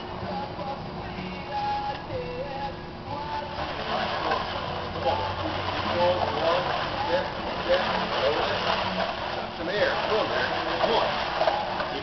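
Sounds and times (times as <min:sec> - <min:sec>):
weight sled scraping on asphalt: 0:03.6 - 0:12.0.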